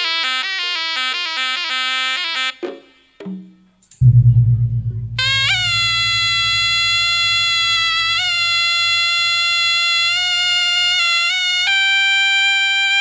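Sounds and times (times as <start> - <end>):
soft hand drums: 3.2 - 7.9
double-reed shawm playing: 4.0 - 10.4.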